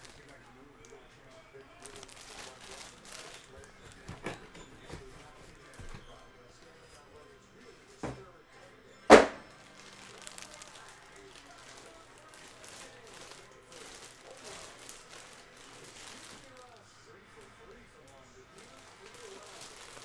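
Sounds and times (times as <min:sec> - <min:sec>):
light handling noises: 0:00.0 - 0:08.8, 0:09.4 - 0:16.8
cardboard box thumping down: 0:09.1 - 0:09.4
knock: 0:09.1 - 0:09.4.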